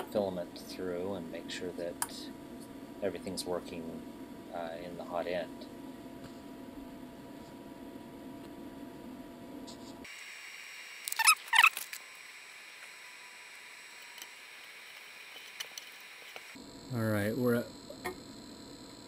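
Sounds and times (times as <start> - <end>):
machine hum: 0.0 - 19.0
high squeaky chirps: 11.1 - 11.8.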